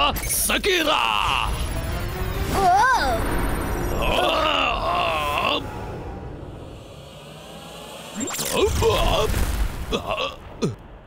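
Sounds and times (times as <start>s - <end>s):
strained wavering groan: 3.9s - 6.4s
animated male character crying out: 4.0s - 5.7s.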